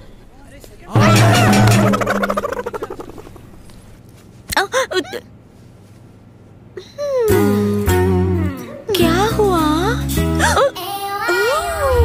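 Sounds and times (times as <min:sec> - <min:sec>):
fast fluttering pulse: 0:01.0 - 0:03.7.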